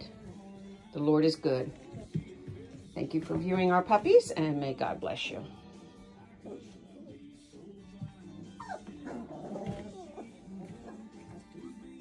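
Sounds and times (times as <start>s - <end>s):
background music: 0.0s - 12.0s
puppies yipping and whimpering: 8.4s - 12.0s.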